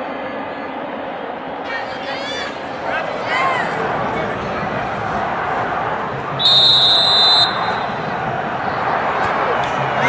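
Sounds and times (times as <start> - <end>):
spectators chattering: 1.6 - 10.0
referee's whistle blast: 6.4 - 8.0.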